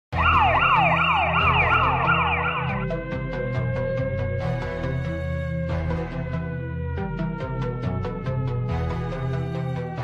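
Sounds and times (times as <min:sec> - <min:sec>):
background music with bass: 0:00.1 - 0:10.0
siren sweeping up and down: 0:00.1 - 0:10.0.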